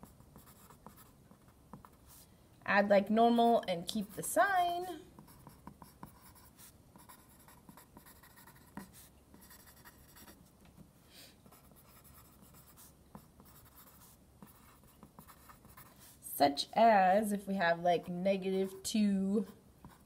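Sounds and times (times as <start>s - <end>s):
pencil scratching on paper: 0.0s - 2.3s, 5.1s - 10.5s, 11.4s - 16.2s, 18.0s - 20.0s.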